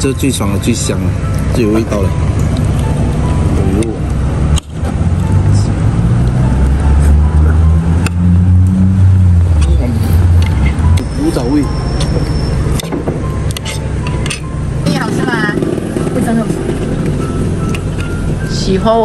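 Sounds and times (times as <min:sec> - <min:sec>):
car engine rumbling: 0:00.0 - 0:19.0.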